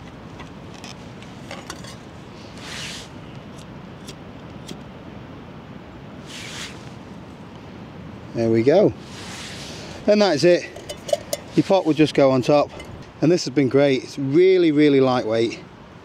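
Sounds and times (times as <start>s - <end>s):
steady background hiss: 0.0s - 16.0s
metal pot stand set down: 10.8s - 11.5s.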